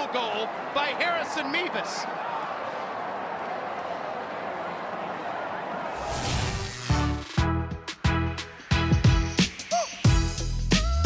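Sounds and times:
crowd talking and cheering: 0.0 - 7.3.

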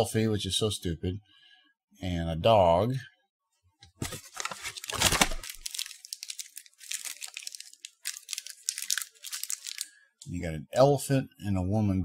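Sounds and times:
wrappers crinkling: 4.0 - 9.9.

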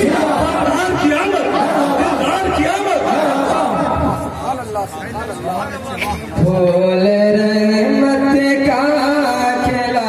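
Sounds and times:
men talking: 0.0 - 6.7
man reciting into a microphone: 0.0 - 10.0.

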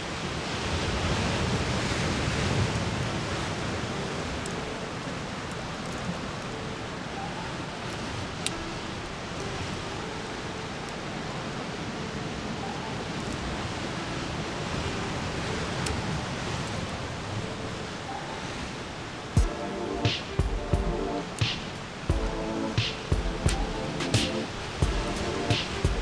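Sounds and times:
ocean surf: 0.0 - 26.0
music with sharp percussive hits: 19.4 - 26.0.

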